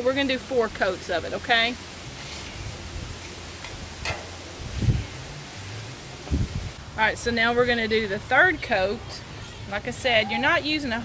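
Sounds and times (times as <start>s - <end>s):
wind rumble on microphone: 1.6s - 11.0s
paper towel rustling on griddle: 2.0s - 5.4s.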